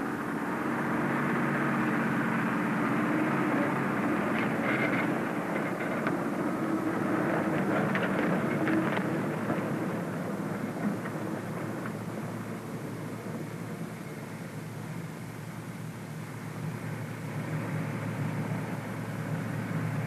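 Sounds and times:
truck engine pulling away: 0.0s - 20.0s.

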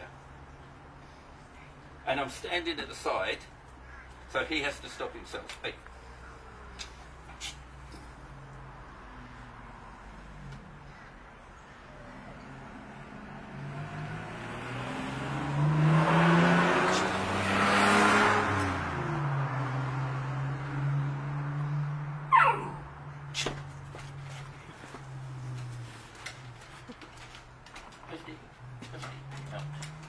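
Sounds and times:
car passing by: 8.1s - 10.7s, 11.9s - 22.3s.

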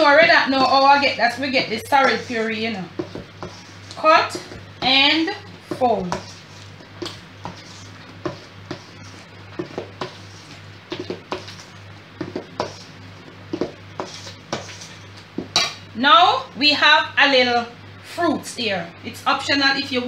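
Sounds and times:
metal spoon scraping mixing bowl: 0.0s - 15.8s.

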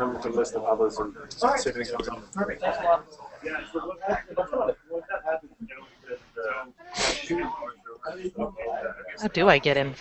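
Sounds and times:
indistinct voices over video call: 0.0s - 10.0s.

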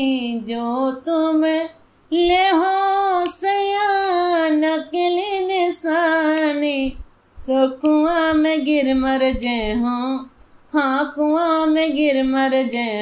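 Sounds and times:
woman singing unaccompanied: 0.0s - 13.0s.

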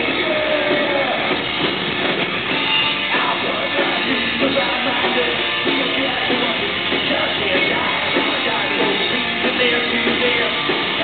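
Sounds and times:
person singing: 0.0s - 1.4s, 3.0s - 11.0s
drums: 0.0s - 11.0s
electric guitar: 0.0s - 11.0s.

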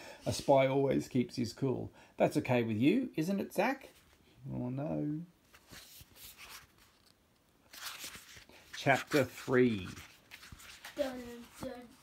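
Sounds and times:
book pages turning: 5.5s - 12.0s.

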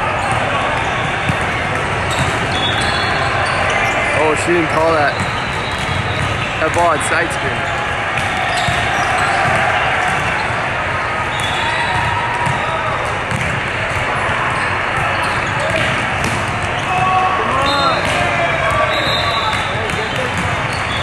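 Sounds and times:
many voices talking and calling: 0.0s - 21.0s
sneakers squeaking on court: 0.1s - 21.0s
balls being struck: 4.7s - 7.3s, 8.1s - 10.5s, 11.3s - 14.2s, 14.9s - 21.0s.

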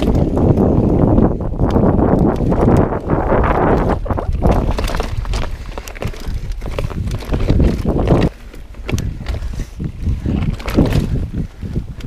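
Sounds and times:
bike clattering: 0.0s - 12.0s
tyres rumbling on dirt: 0.0s - 12.0s
wind buffeting microphone: 0.0s - 12.0s.

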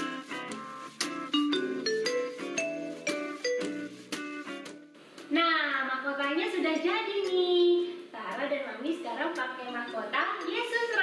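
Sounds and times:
xylophone jingle: 1.3s - 4.2s.

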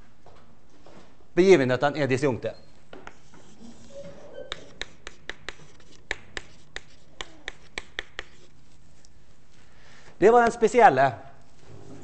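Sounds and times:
chalk tapping and scratching: 3.0s - 9.1s.

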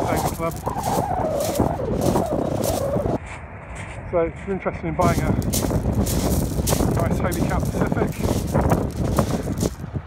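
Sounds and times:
wavering drawn-out whine: 0.0s - 3.7s
footsteps crunching on shingle: 0.0s - 10.0s.

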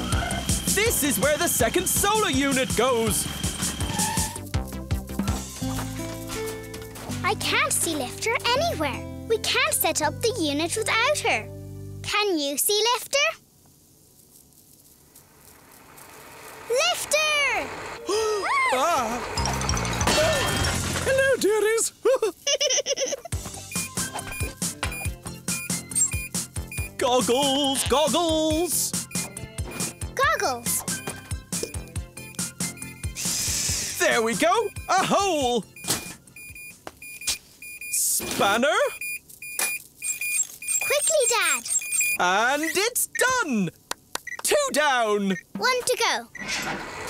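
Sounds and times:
rough hissing rumble: 12.8s - 19.5s, 33.1s - 34.3s
short high beeps: 23.7s - 27.0s, 29.1s - 33.2s, 35.8s - 38.0s, 38.8s - 43.3s.

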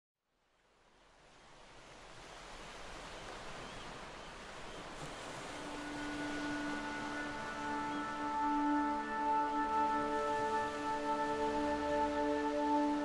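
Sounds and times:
ocean waves rushing: 1.4s - 13.0s
ambient music held notes: 4.8s - 13.0s.

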